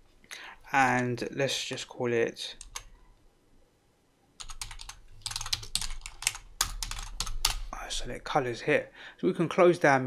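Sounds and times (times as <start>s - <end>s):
typing on computer keyboard: 2.6s - 2.9s, 4.4s - 7.7s.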